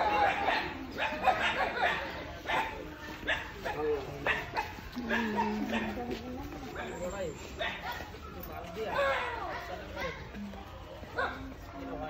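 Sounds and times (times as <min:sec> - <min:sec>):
people calling outdoors: 0:00.0 - 0:12.0.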